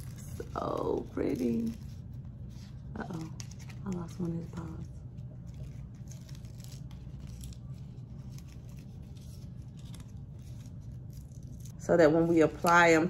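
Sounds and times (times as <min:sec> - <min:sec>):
steady low hum: 0:00.0 - 0:13.0.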